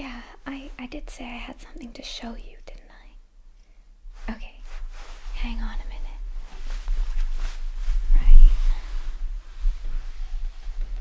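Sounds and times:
woman whispering: 0.0s - 3.2s, 4.2s - 4.6s, 5.3s - 6.3s.

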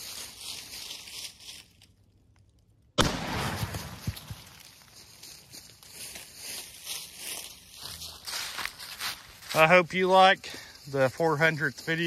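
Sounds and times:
rifle shot: 3.0s - 4.4s.

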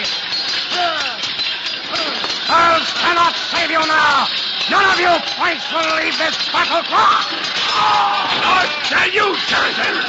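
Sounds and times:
background din: 0.0s - 10.0s
people shouting and yelling: 0.0s - 10.0s.

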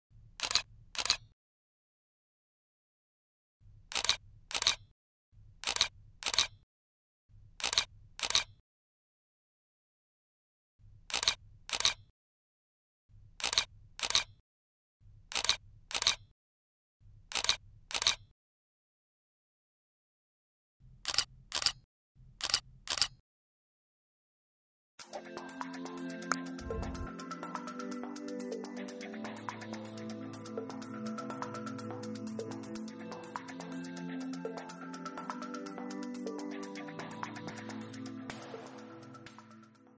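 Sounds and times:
camera shutter clicks: 0.4s - 1.3s, 3.9s - 4.8s, 5.6s - 6.5s, 7.6s - 8.5s, 11.1s - 12.0s, 21.0s - 21.8s.

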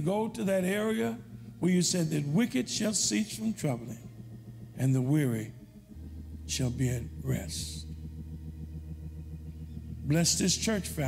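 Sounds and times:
soft wavering sustained chord: 0.0s - 11.0s.

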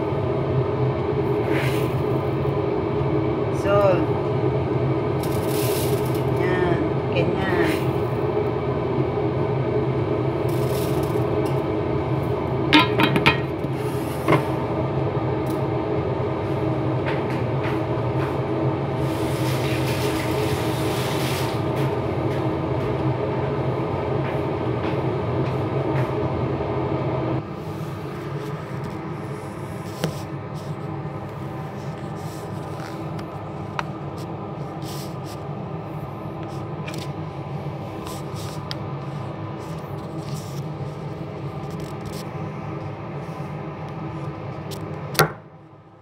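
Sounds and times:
droning hum with fixed tones: 0.0s - 46.0s
hiss: 19.0s - 21.6s.

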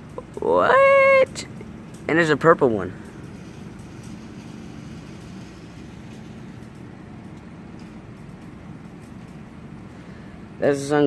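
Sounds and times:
low even hum: 0.0s - 11.0s.

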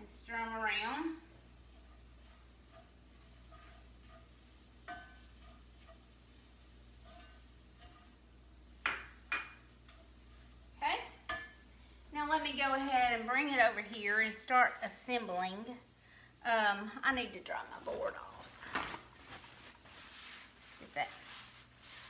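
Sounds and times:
spoon clinking and scraping pan: 1.7s - 6.3s, 6.9s - 10.6s, 11.2s - 11.7s.

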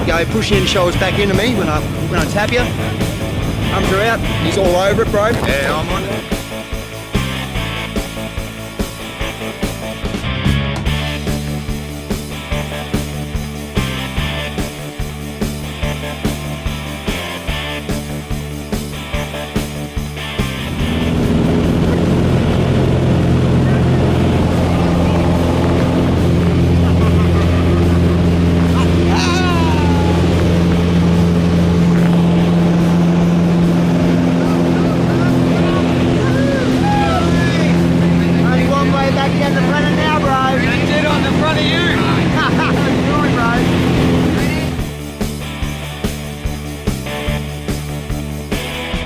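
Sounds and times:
light aircraft engine: 0.0s - 49.0s
person calling out: 28.7s - 30.4s.

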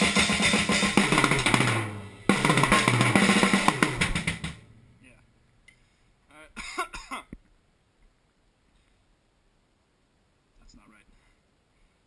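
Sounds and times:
drum kit hits: 0.0s - 4.9s
cymbals ringing: 0.0s - 5.0s
short cough-like vocal sound: 6.6s - 7.3s.

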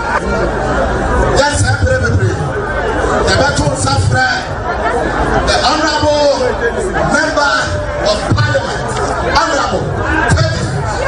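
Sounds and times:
man talking into a microphone: 1.3s - 2.6s, 3.2s - 4.6s, 5.4s - 11.0s.

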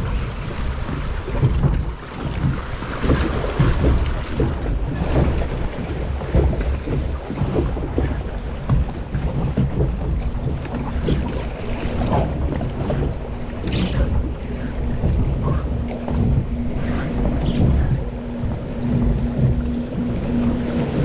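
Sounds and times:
water rushing and sloshing: 0.0s - 21.0s
wind buffeting microphone: 0.0s - 21.0s.

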